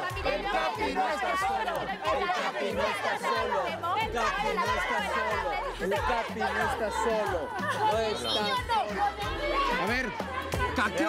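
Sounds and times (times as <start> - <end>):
music playing: 0.0 - 11.0
people talking and shouting: 0.0 - 11.0.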